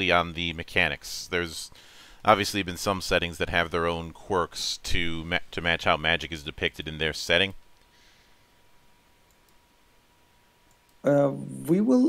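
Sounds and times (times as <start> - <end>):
thin steady hum: 0.0 - 12.0
faint clicks: 9.2 - 9.6, 10.6 - 11.0.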